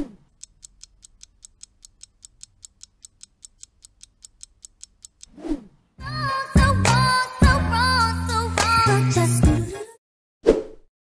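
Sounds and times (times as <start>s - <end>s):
short swish: 0.0s - 0.2s, 5.3s - 5.8s, 10.4s - 10.8s
clock ticking: 0.2s - 5.3s.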